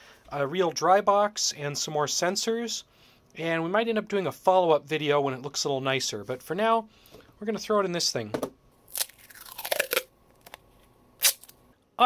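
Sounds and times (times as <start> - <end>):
duct tape tearing off roll: 8.9 - 10.6, 11.2 - 11.6.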